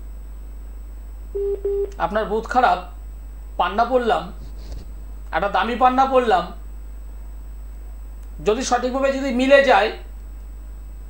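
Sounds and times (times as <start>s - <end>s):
steady low hum: 0.0s - 11.0s
telephone ringing beeps: 1.4s - 1.9s.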